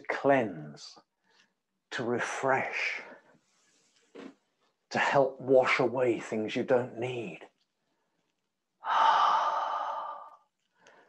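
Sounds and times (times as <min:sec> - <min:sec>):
person sighing: 0:08.8 - 0:10.4.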